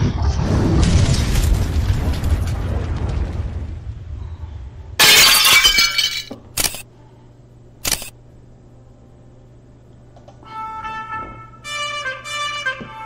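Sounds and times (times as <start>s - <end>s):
glass shattering crash: 5.0s - 6.8s.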